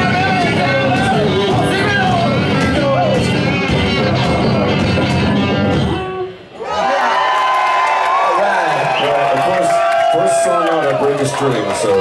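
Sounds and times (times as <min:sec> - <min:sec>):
drums: 0:00.0 - 0:06.6
audience cheering and whooping: 0:06.6 - 0:12.0.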